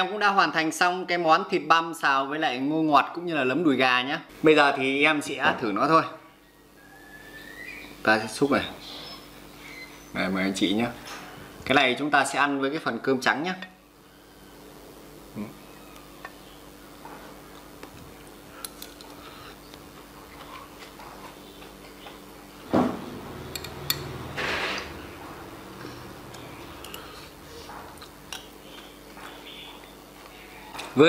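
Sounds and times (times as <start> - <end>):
loud knock: 22.7 - 23.2.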